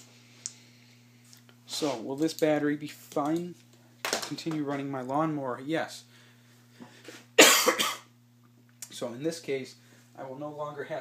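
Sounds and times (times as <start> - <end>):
man coughing: 7.4 - 8.1.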